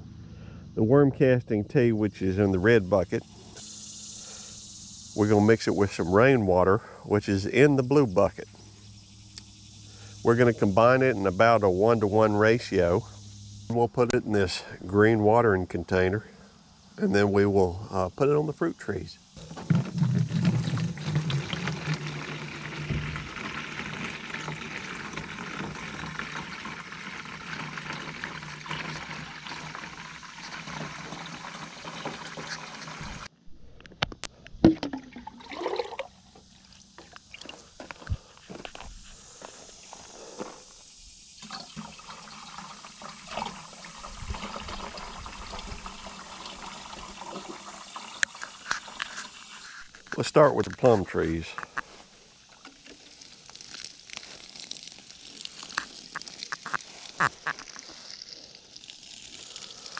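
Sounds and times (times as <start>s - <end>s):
liquid pouring into watering can: 19.4s - 33.3s, 34.6s - 37.7s, 41.4s - 50.2s, 51.8s - 59.9s
water sloshing and splashing: 19.4s - 33.3s, 34.6s - 37.6s, 52.3s - 59.9s.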